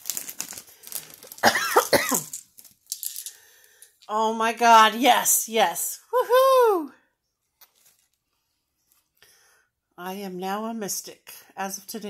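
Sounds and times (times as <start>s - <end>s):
plastic bag crinkling: 0.0s - 4.1s, 7.6s - 8.2s
woman exclaiming: 5.0s - 6.9s.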